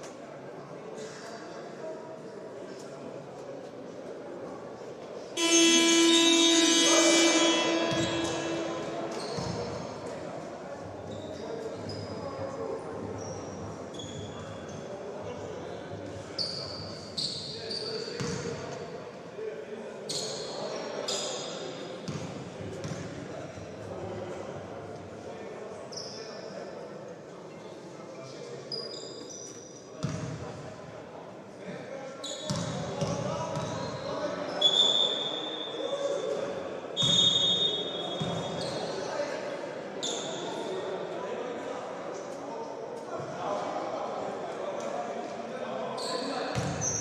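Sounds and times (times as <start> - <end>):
arena horn: 5.4 - 10.6
sneaker squeaks: 5.4 - 14.9, 16.3 - 18.6, 20.1 - 23.1, 25.9 - 26.5, 28.7 - 30.5, 32.2 - 36.2, 37.0 - 39.3, 40.0 - 40.7, 46.0 - 47.0.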